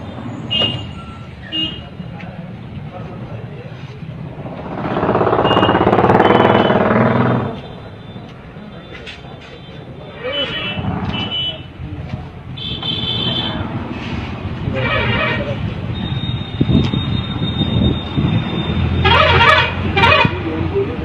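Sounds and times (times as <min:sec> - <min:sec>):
vehicle running: 0:02.6 - 0:09.6, 0:10.4 - 0:21.0.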